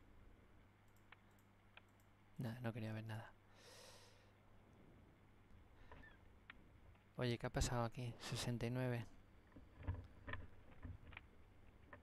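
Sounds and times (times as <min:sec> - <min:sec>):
low steady hum: 0:00.0 - 0:12.0
computer mouse clicks: 0:00.8 - 0:02.2, 0:09.6 - 0:12.0.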